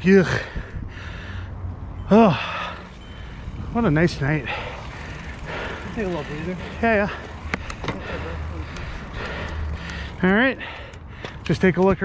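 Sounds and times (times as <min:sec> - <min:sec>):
bicycle tyres rumbling: 0:00.2 - 0:12.0
faint clicks: 0:07.4 - 0:08.0, 0:08.6 - 0:12.0.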